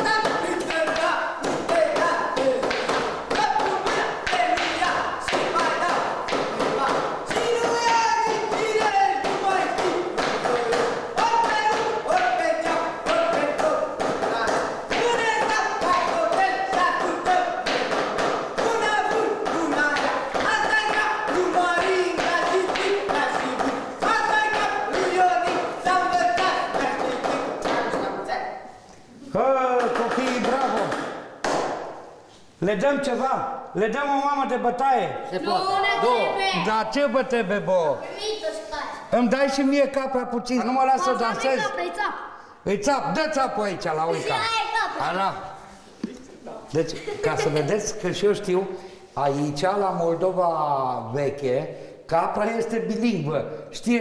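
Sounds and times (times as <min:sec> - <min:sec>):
people calling and chanting: 0:00.0 - 0:54.0.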